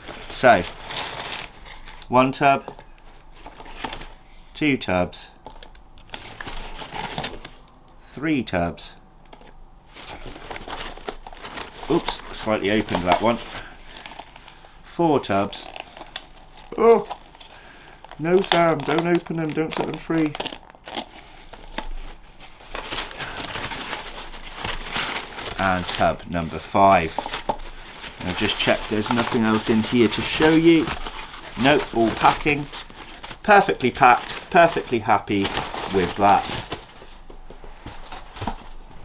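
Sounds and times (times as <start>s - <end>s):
paper packing rustling and crinkling: 0.0s - 4.4s, 5.4s - 7.7s, 9.3s - 39.0s.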